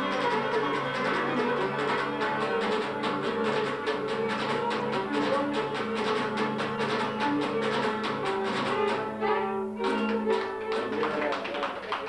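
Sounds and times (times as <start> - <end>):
plucked string folk music: 0.0 - 11.5.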